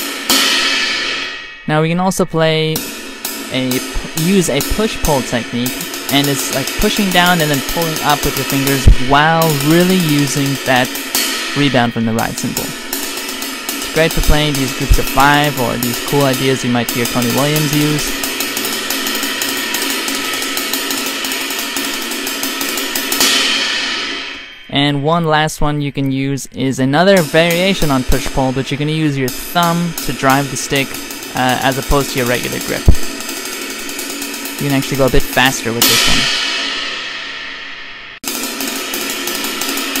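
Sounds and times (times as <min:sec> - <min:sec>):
cymbal ringing: 0:00.0 - 0:40.0
ride cymbal struck with drumstick: 0:00.0 - 0:40.0.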